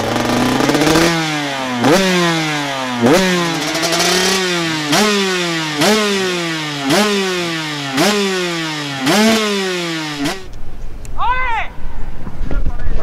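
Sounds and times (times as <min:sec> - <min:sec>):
motorbike throttle blips: 0:00.0 - 0:10.6.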